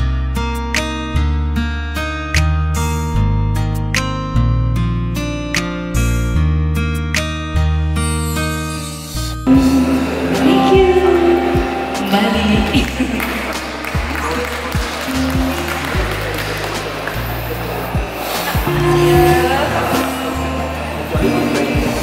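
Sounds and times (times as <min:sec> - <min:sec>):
acoustic guitar: 0:00.0 - 0:22.0
sustained bass notes: 0:00.0 - 0:22.0
low beat: 0:09.4 - 0:22.0
woman singing into a microphone: 0:09.5 - 0:13.2.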